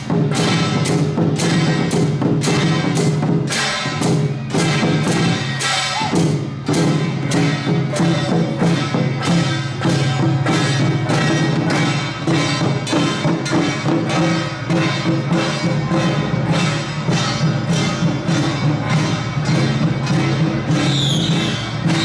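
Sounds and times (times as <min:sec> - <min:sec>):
barrel drums beating: 0:00.0 - 0:22.0
brass hand cymbals crashing: 0:00.0 - 0:22.0.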